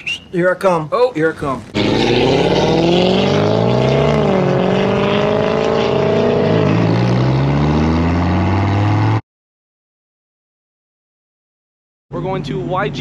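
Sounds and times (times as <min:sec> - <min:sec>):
sports car engine revving: 0:01.7 - 0:09.2.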